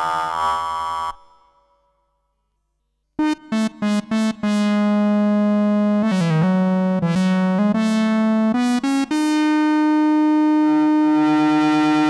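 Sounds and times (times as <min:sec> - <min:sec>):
synthesizer steady note: 0:03.2 - 0:12.0.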